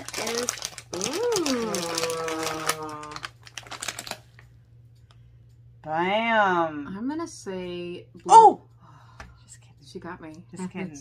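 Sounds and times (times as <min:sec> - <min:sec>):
packing wrap crinkling: 0:00.0 - 0:04.5
steady low hum: 0:00.0 - 0:11.0.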